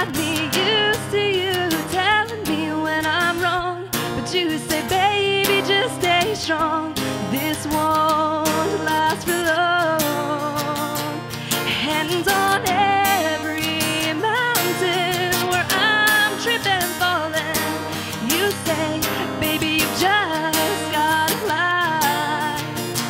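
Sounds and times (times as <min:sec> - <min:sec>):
acoustic guitar strumming: 0:00.0 - 0:23.0
woman singing with vibrato: 0:00.0 - 0:23.0.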